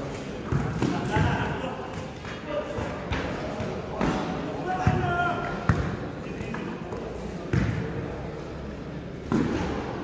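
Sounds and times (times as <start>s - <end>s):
players' voices: 0.0s - 10.0s
basketball bouncing on court: 0.4s - 1.5s, 2.7s - 6.1s, 7.5s - 8.0s.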